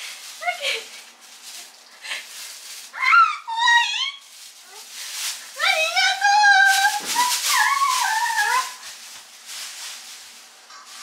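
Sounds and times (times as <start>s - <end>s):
cloth rustling: 0.0s - 3.3s, 4.2s - 11.0s.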